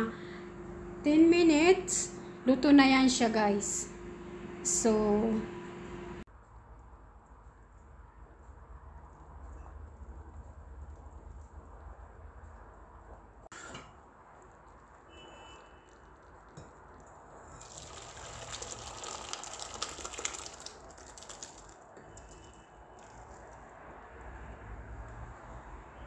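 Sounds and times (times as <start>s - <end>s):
low hum: 0.0s - 6.3s
thick sauce sloshing pour: 15.9s - 22.4s.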